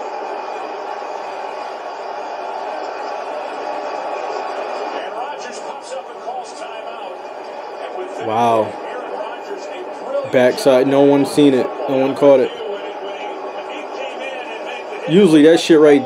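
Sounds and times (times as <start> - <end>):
stadium crowd din: 0.0 - 16.0
commentators talking: 4.9 - 16.0.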